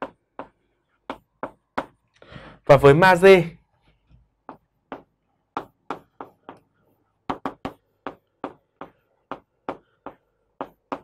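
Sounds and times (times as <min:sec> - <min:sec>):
chalk tapping on chalkboard: 0:00.0 - 0:02.1, 0:04.3 - 0:11.0.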